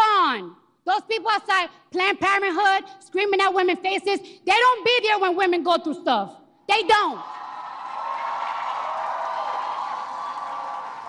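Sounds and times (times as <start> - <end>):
large crowd cheering and applauding: 7.2 - 11.0.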